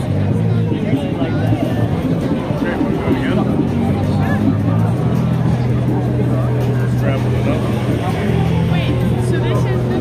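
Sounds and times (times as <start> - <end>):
vehicle engine running: 0.0 - 10.0
voices of passers-by: 0.0 - 10.0.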